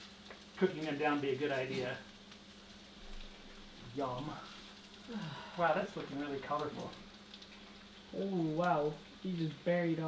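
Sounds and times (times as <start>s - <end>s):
food sizzling in a skillet: 0.0s - 10.0s.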